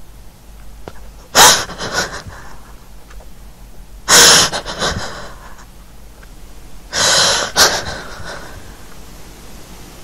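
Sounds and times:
person sobbing: 0:01.3 - 0:02.9, 0:04.1 - 0:05.8, 0:06.9 - 0:08.8.

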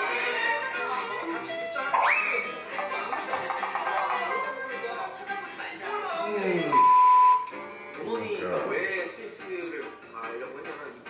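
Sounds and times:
test-pattern beep: 0:06.7 - 0:07.5.

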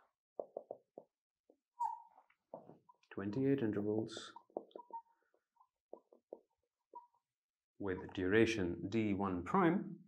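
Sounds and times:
marker squeak: 0:01.8 - 0:02.4, 0:04.4 - 0:05.3.

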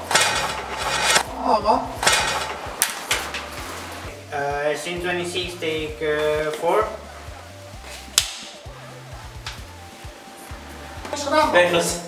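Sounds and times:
background music with bass line: 0:00.0 - 0:12.0.

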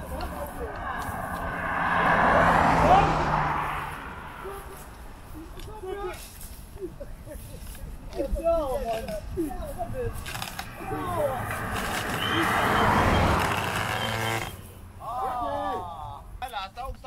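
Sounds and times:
vehicle passing on road: 0:00.0 - 0:07.0, 0:08.8 - 0:16.2
voices: 0:00.0 - 0:17.0.

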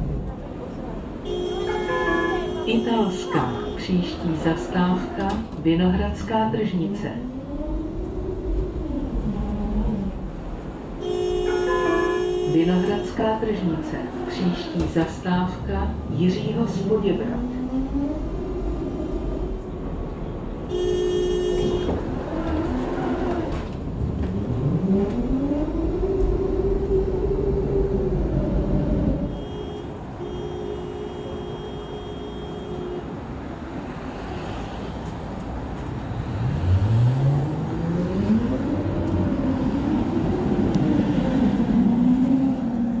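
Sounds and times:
tram motors whining: 0:00.0 - 0:43.0
tram running rumble: 0:00.0 - 0:43.0
tram door warning buzzer: 0:29.3 - 0:33.2.

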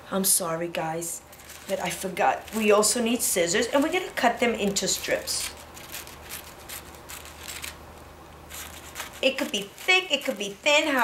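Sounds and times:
scissors cutting tissue paper: 0:01.3 - 0:07.8, 0:08.5 - 0:11.0.

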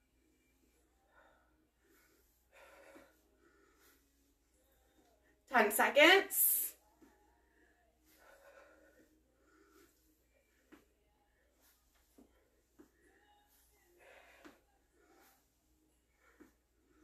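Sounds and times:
faint breathing: 0:00.4 - 0:05.4, 0:07.0 - 0:17.0.

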